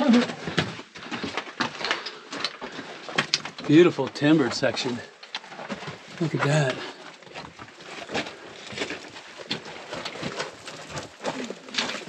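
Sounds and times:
footsteps crunching on rock: 0.0s - 12.0s.

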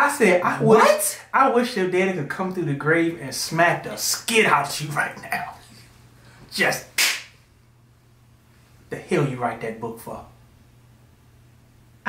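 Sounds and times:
faint steady hum: 0.0s - 12.0s
hand clap: 7.0s - 7.4s.

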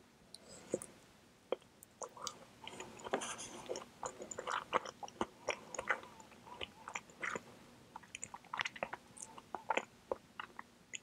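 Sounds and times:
soft chewing with mouth clicks: 0.3s - 11.0s.

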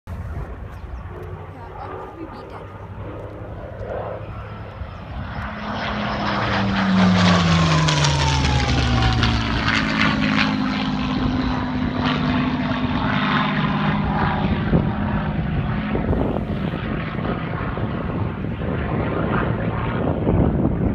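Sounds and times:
propeller plane engine passing: 0.1s - 20.9s.

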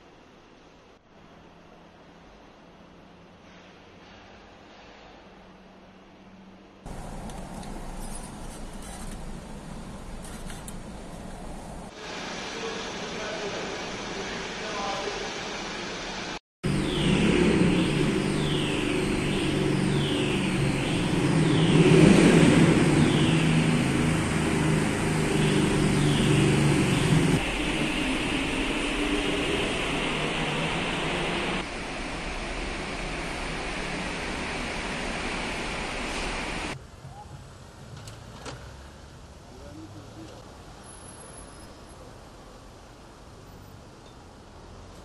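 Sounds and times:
quieter traffic: 0.0s - 45.0s
car and motorcycle engines: 4.8s - 12.0s, 16.6s - 36.8s, 37.7s - 41.6s.

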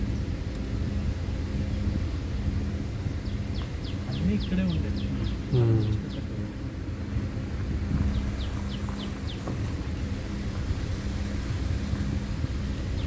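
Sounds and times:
vehicle engine humming: 0.0s - 13.0s.

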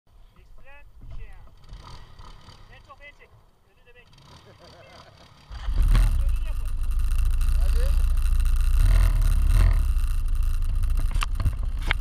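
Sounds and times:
distant voices calling and talking: 0.1s - 12.0s
low rumble: 5.5s - 12.0s.

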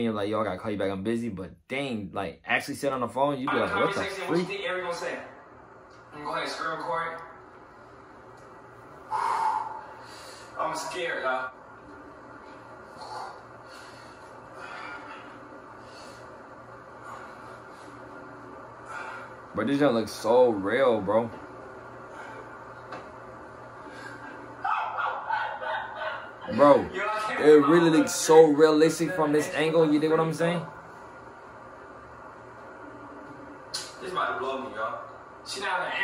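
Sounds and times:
woman laughing in choppy bursts: 24.7s - 26.4s.

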